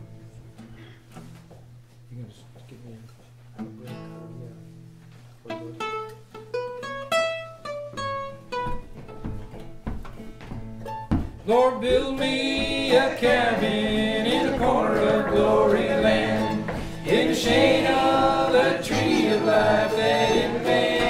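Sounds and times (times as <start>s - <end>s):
picked melody line: 10.9s - 21.0s
acoustic string band playing: 12.3s - 21.0s.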